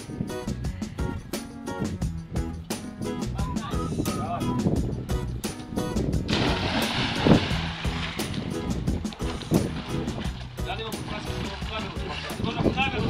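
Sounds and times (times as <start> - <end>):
music: 0.0 - 13.0
splash of person diving: 6.3 - 8.5
water sloshing: 6.3 - 13.0.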